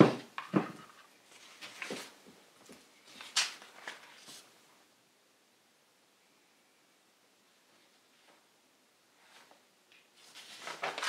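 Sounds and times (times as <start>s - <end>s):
paper rustling: 0.4s - 4.5s, 9.2s - 11.0s
notebook page flipping: 1.3s - 2.2s, 3.1s - 4.5s, 9.2s - 11.0s.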